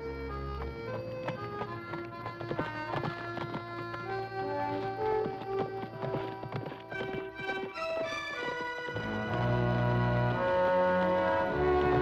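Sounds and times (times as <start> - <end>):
hooves clip-clopping on dirt: 0.0 - 12.0
music score with held notes: 0.0 - 12.0.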